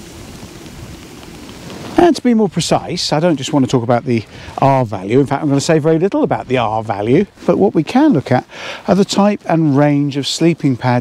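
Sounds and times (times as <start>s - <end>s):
wind hissing: 0.0s - 11.0s.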